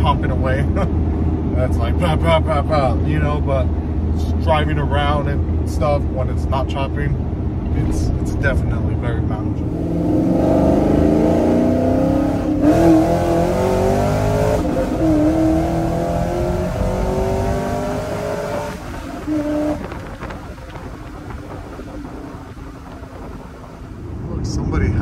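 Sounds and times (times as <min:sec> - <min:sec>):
truck engine revving: 0:09.5 - 0:24.3.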